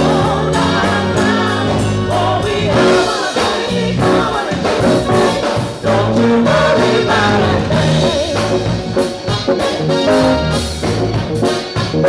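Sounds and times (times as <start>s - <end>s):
gospel choir singing: 0.0s - 11.2s
drum kit steady beat: 0.0s - 12.0s
electric bass: 0.0s - 12.0s.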